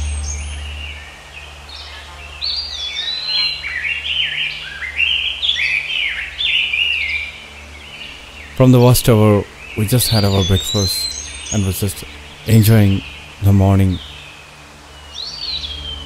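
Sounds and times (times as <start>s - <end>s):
bird chirping: 0.0s - 16.0s
low steady hum: 0.0s - 16.0s.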